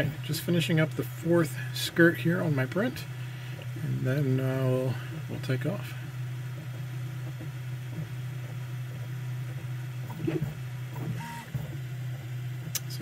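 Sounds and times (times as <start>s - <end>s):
printer motor hum: 0.0s - 13.0s.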